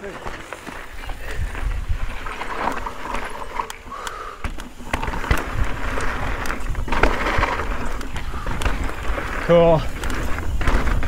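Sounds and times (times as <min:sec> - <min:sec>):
bike rattling over rocks: 0:00.0 - 0:11.0
tyres crunching over gravel: 0:00.0 - 0:11.0.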